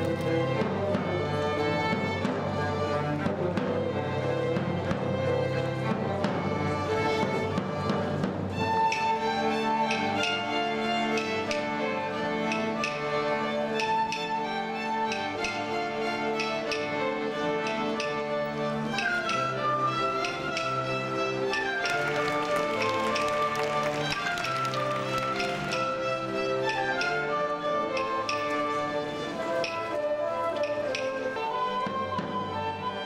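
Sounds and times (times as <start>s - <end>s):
string ensemble playing dance tune: 0.0s - 33.0s
percussive taps: 15.0s - 29.9s.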